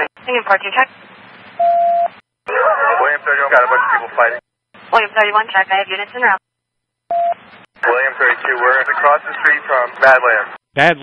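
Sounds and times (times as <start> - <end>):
voice over radio: 2.5 - 4.4, 7.8 - 11.0
radio static hiss: 2.5 - 6.4, 7.4 - 11.0
radio beep: 7.1 - 9.7.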